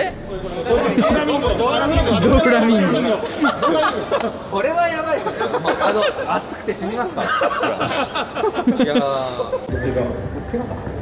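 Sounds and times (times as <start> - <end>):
voices chattering: 0.0 - 10.3.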